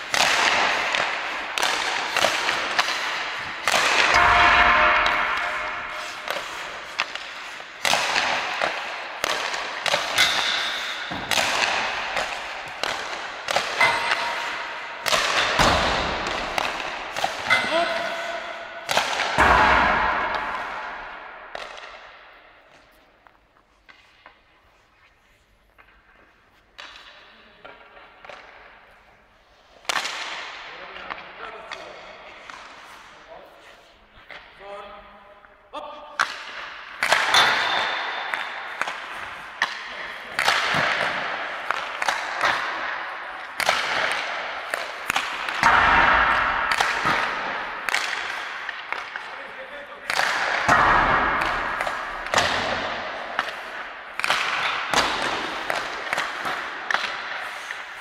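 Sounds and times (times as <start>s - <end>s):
deep puck impact with echo: 0.0s - 24.8s, 25.7s - 58.0s
hockey stick cracking on puck: 0.0s - 33.2s, 36.2s - 58.0s.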